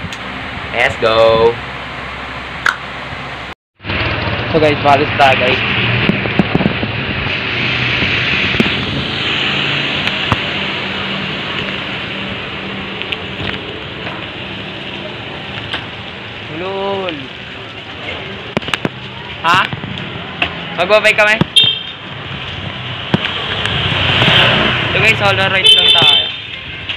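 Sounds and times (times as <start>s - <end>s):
wind rushing on microphone: 5.4s - 10.5s.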